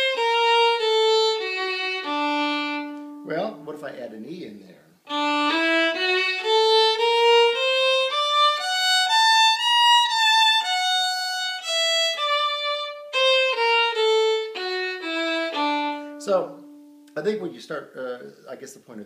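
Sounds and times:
solo violin bowing: 0:00.0 - 0:03.6, 0:05.0 - 0:17.1.

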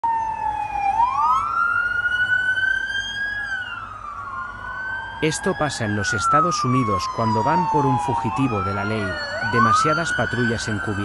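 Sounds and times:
police siren wailing: 0:00.0 - 0:11.0.

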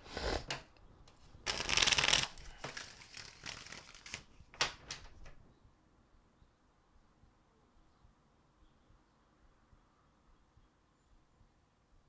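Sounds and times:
cards being shuffled: 0:01.4 - 0:05.4.

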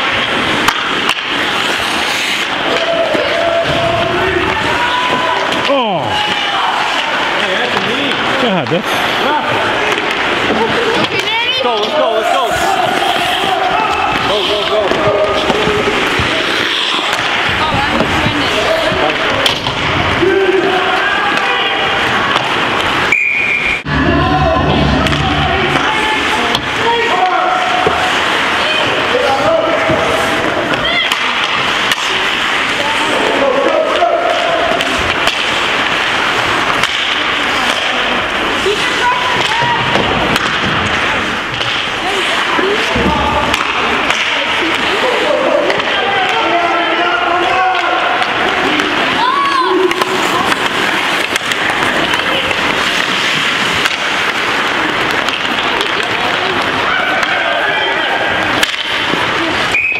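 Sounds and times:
sticks and puck hitting boards: 0:00.0 - 0:08.8, 0:09.6 - 0:12.1, 0:12.7 - 0:23.2, 0:24.0 - 0:59.8
spectators shouting: 0:02.4 - 0:07.4, 0:11.3 - 0:17.7, 0:18.4 - 0:40.1, 0:41.4 - 0:59.9
referee's whistle: 0:23.1 - 0:23.9.

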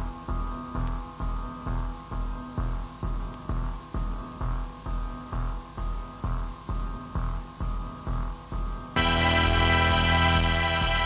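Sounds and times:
steady hum: 0:00.0 - 0:11.0
low synthesizer pulse: 0:08.9 - 0:11.0.

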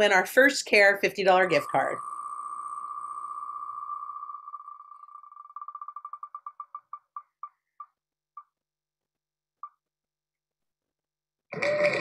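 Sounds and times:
spinning wheel ticking: 0:01.2 - 0:07.9.

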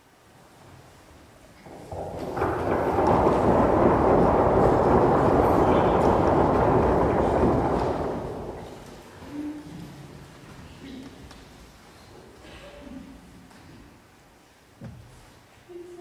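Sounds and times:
audience applause: 0:01.9 - 0:09.0.

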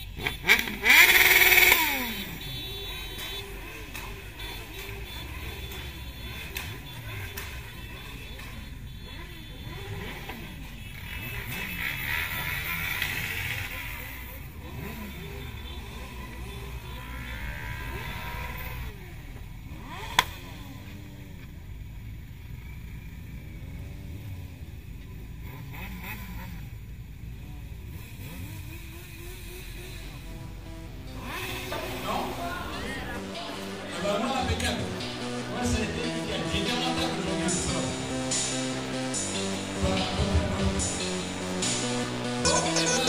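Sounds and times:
engine rumble: 0:00.0 - 0:43.0
motorcycle engines revving: 0:00.0 - 0:43.0.

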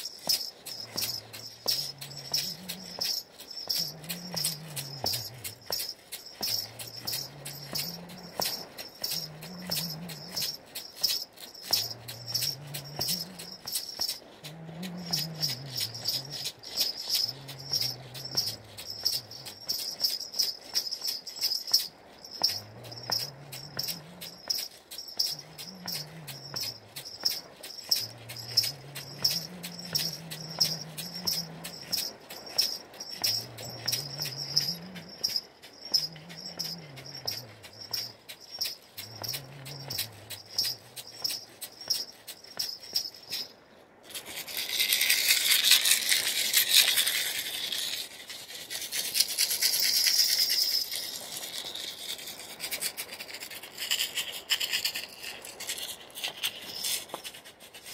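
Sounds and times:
ankle bells jingling: 0:00.0 - 0:57.9
basket rattle shaking: 0:00.0 - 0:57.9.

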